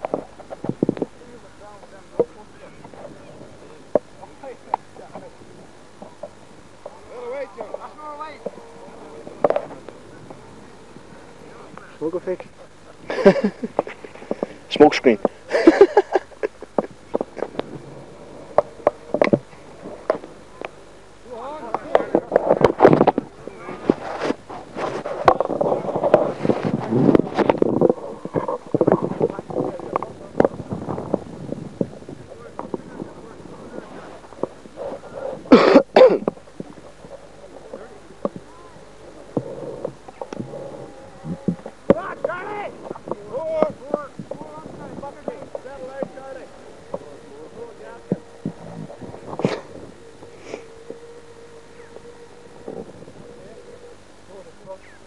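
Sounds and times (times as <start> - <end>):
voices talking and calling: 0.0 - 55.0.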